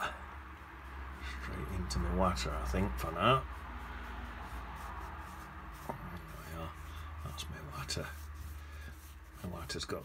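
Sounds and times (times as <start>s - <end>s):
brush sweeping on wet paper: 0.4s - 10.0s.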